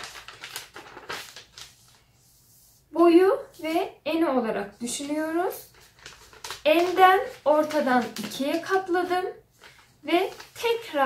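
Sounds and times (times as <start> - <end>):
paper rustling and crinkling: 0.0 - 2.5, 4.8 - 11.0.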